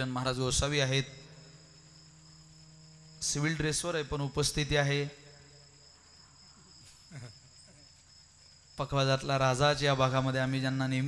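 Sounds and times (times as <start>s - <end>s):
faint high-pitched whine: 0.0s - 11.0s
low hum: 0.0s - 11.0s.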